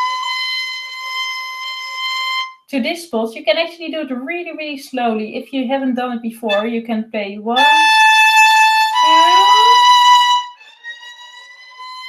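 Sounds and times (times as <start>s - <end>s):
violin sliding up a long high note: 0.0s - 2.6s, 7.6s - 12.0s.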